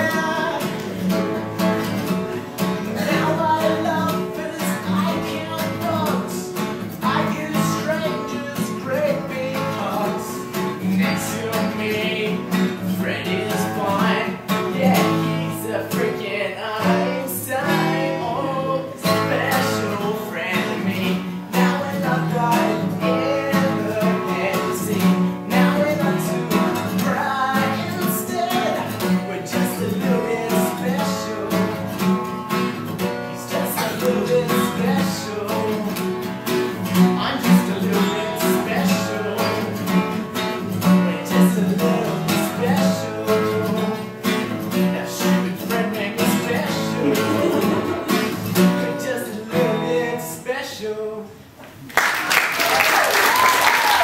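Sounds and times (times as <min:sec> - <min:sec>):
acoustic guitar strumming: 0:00.0 - 0:51.5.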